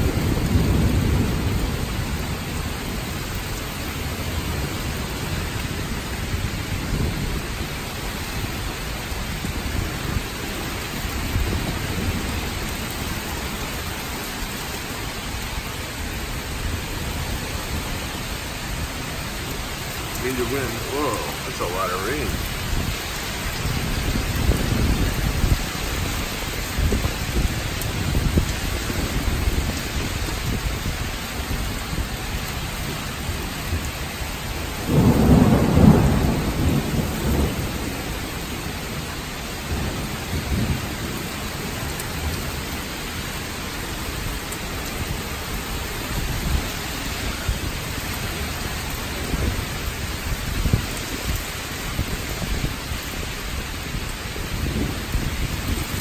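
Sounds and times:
heavy rain pouring: 0.0 - 56.0
strong gusting wind: 16.2 - 40.9, 45.0 - 56.0
loud low thunder rumble: 34.8 - 38.1.

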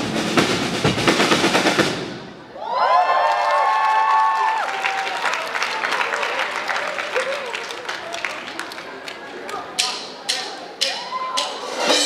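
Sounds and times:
drum kit hits: 0.0 - 2.4
audience cheering: 2.4 - 9.6.

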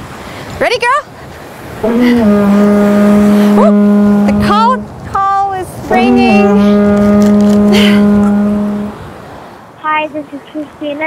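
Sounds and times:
faint surf hiss: 0.0 - 11.0
conch shell trumpet note: 1.8 - 4.9, 5.9 - 9.1.

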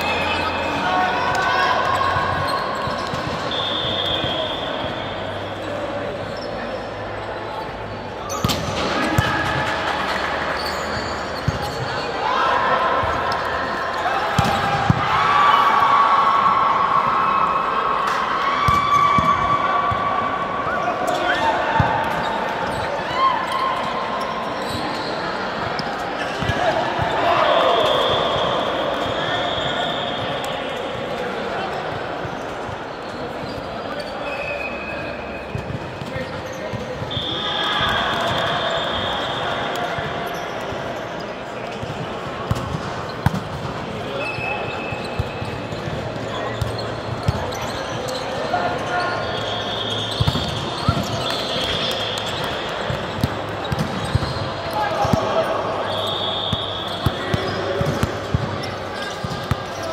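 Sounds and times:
ball bouncing on court floor: 8.3 - 10.7, 11.4 - 12.0, 14.4 - 15.0, 41.8 - 43.8, 50.1 - 55.3, 57.0 - 59.7.

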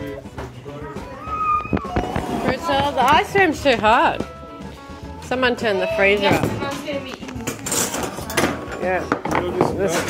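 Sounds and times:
plastic tubs clattering on table: 7.3 - 10.0.

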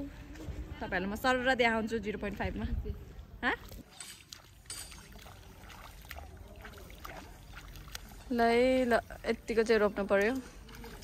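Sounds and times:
muddy water sloshing: 2.2 - 11.0.

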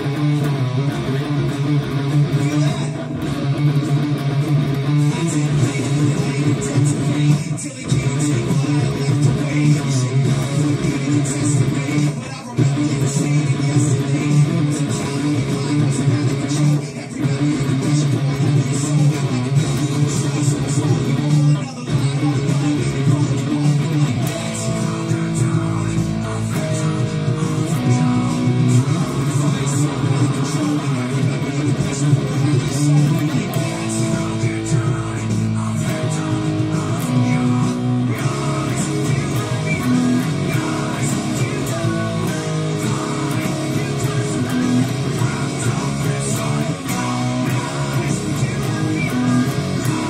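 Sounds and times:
electric guitar rock riff: 0.0 - 50.0
rock band music: 0.0 - 50.0.

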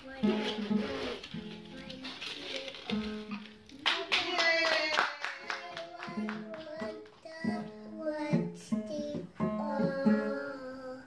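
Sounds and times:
young child singing: 0.0 - 11.0.

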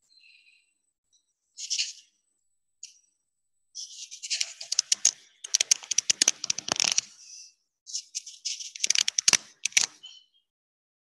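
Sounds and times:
quick irregular clicks: 4.2 - 7.1, 8.5 - 10.0.

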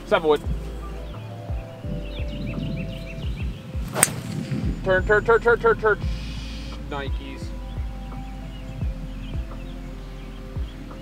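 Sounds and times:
held synth notes: 0.0 - 11.0
deep kick drum beat: 0.4 - 9.7, 10.6 - 10.9.

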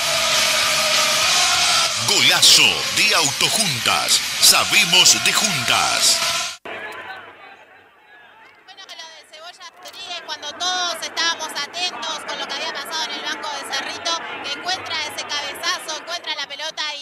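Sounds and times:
rapid football commentary: 1.8 - 6.5.

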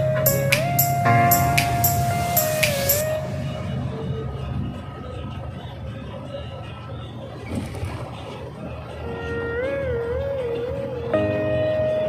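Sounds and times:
bus engine and road rumble: 2.7 - 12.0.

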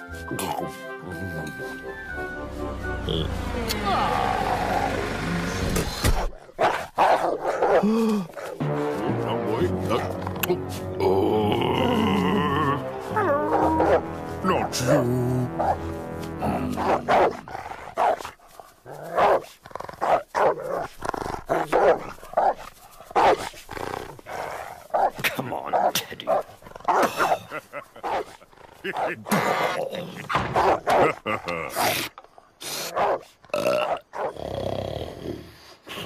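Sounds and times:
background music: 0.0 - 6.0, 8.0 - 17.7
dog barking and growling: 4.0 - 8.6, 11.7 - 35.2.

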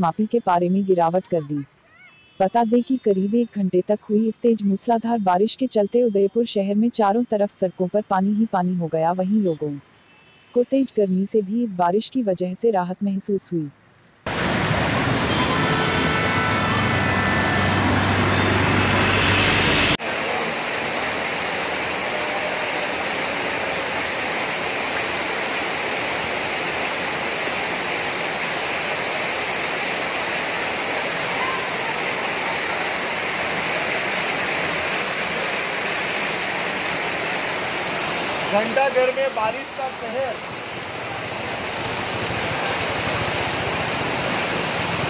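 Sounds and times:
vehicle engine humming: 14.3 - 20.0
heavy rain and floodwater rushing: 14.3 - 45.0.

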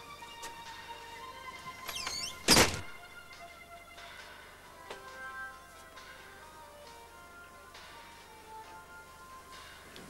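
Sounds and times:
soft background music: 0.0 - 10.0
door squeak: 1.8 - 3.0
door closing with thud: 1.9 - 3.0.

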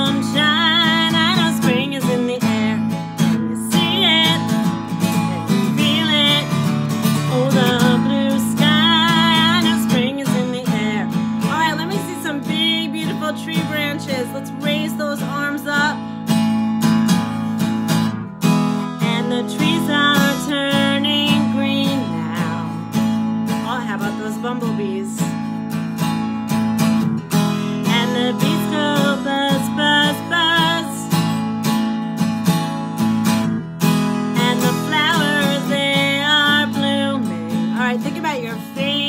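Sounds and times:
woman singing with vibrato: 0.0 - 16.2, 18.7 - 25.4, 27.7 - 31.5, 34.1 - 39.0
strummed acoustic guitar: 0.0 - 39.0.

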